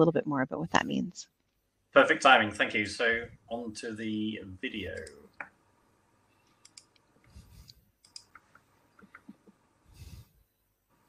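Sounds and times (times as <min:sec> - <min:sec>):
faint clicks: 0:06.4 - 0:07.1, 0:08.0 - 0:09.6.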